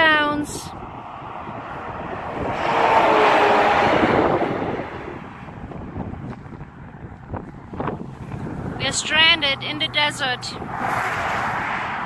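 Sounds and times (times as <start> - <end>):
wind buffeting microphone: 0.0 - 12.0
vehicle passing at speed: 0.7 - 12.0.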